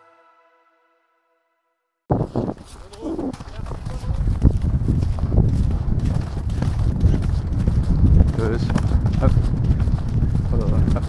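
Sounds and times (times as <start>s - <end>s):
hoofbeats on turf: 2.1s - 11.0s.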